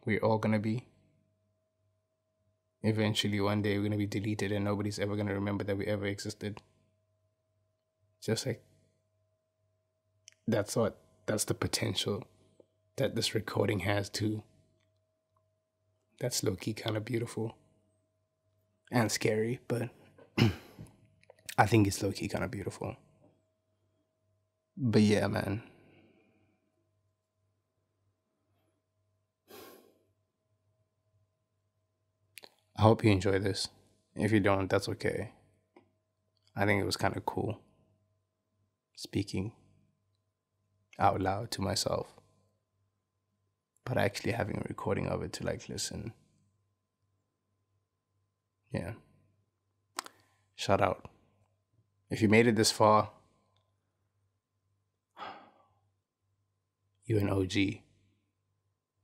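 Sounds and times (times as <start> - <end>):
faint steady hum: 0.0 - 59.0
breathy sigh: 55.2 - 55.6.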